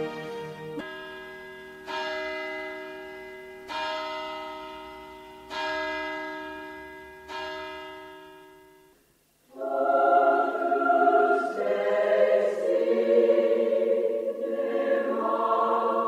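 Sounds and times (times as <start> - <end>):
church bell tolling: 0.8 - 9.2.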